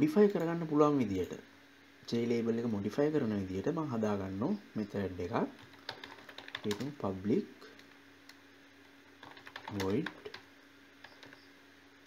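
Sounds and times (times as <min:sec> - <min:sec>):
computer keyboard keystrokes: 0:05.6 - 0:06.9, 0:09.2 - 0:11.5.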